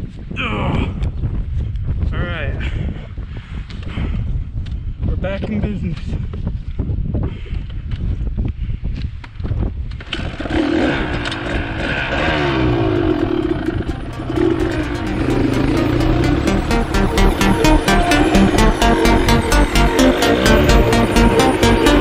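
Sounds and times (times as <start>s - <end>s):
wind on microphone: 0.0s - 10.4s
dirt bike engine accelerating: 10.2s - 22.0s.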